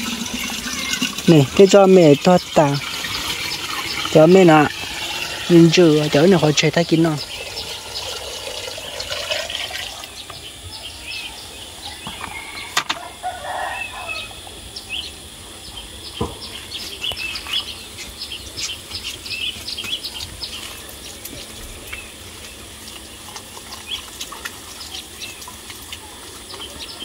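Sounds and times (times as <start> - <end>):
chickens chirping: 0.0 - 27.0.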